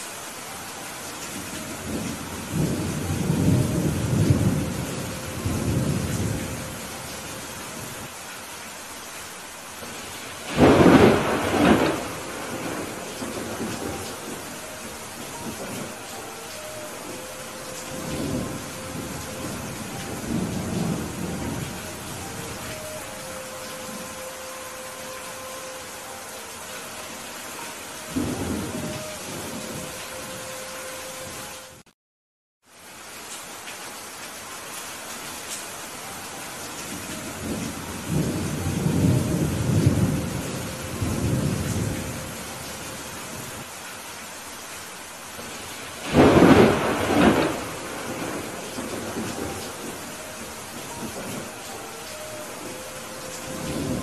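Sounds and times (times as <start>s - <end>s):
heavy rain falling: 0.0s - 31.9s, 32.6s - 54.0s
rolling thunder: 1.8s - 7.0s, 10.4s - 24.1s, 46.0s - 54.0s.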